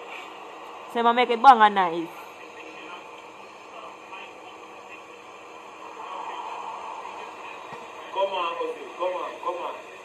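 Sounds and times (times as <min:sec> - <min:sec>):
muffled voices from a video: 0:01.0 - 0:10.0.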